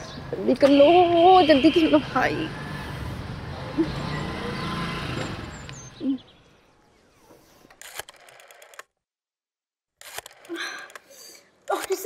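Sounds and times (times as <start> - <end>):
small motorcycle running: 2.0 - 6.0.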